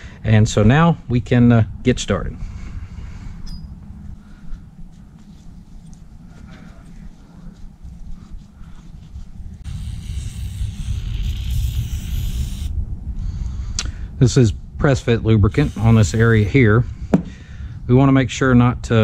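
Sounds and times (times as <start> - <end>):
rag rubbing metal: 9.6 - 12.7, 15.5 - 16.8
aerosol can spraying hiss: 9.7 - 12.7, 15.5 - 16.6.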